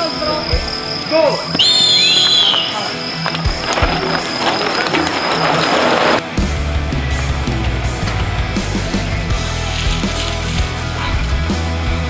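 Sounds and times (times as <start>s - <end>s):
bike tyres rushing: 1.6s - 11.2s
loud rock music: 2.3s - 12.0s.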